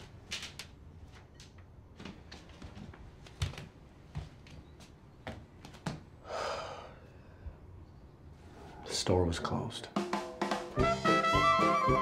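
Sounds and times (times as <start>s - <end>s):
soft footfalls: 0.0s - 6.1s
man's heavy breath: 6.2s - 7.6s.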